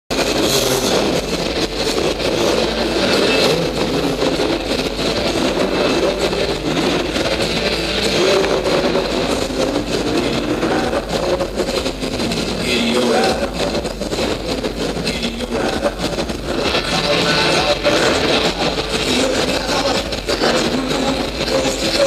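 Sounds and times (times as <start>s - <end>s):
dirt bike engines revving: 0.1s - 22.0s.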